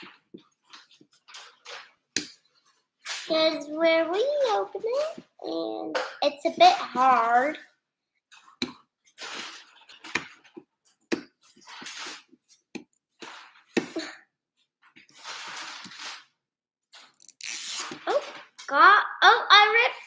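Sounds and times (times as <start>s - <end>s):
plastic wrapping crinkling and tearing: 15.1s - 16.4s, 17.0s - 18.7s.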